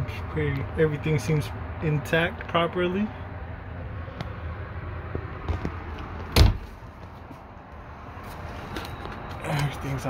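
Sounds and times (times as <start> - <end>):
loud dull thump: 6.3 - 6.8.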